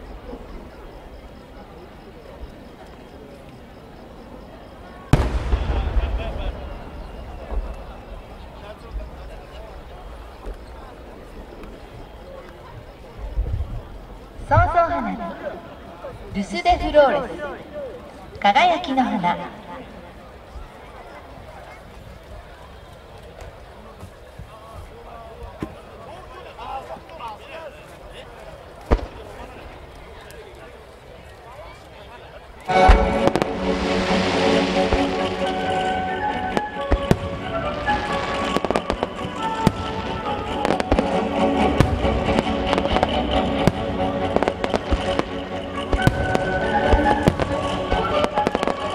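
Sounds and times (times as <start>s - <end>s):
sharp firework cracks: 5.1s - 8.2s, 28.8s - 30.1s, 32.7s - 48.9s
low rumbling echo: 5.1s - 8.6s, 32.7s - 48.2s
deep firework boom: 5.1s - 9.3s, 32.7s - 48.5s.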